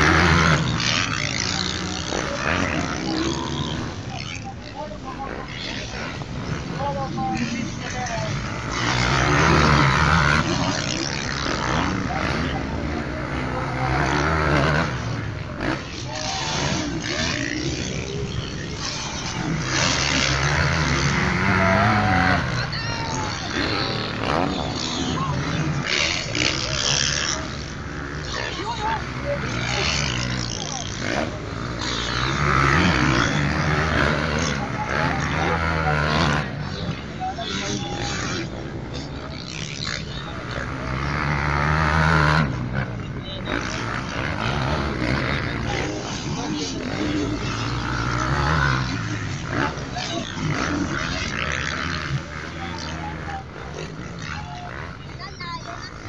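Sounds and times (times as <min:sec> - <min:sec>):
crowd talking: 0:00.0 - 0:56.0
dirt bike engines revving: 0:00.0 - 0:56.0.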